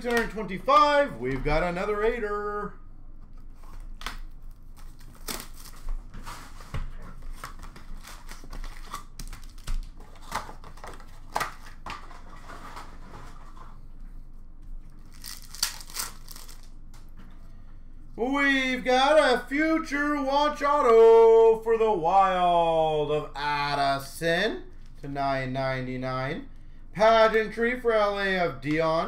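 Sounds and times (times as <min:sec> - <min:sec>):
foil wrappers tearing and crinkling: 0:03.5 - 0:06.5, 0:07.2 - 0:11.8, 0:15.0 - 0:16.8.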